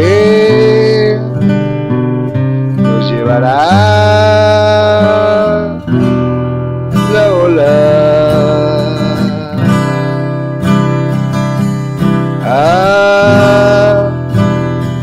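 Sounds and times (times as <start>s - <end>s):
person singing long notes: 0.0s - 1.4s, 2.8s - 5.9s, 7.0s - 10.3s, 12.4s - 14.3s
acoustic guitar strumming: 0.0s - 15.0s.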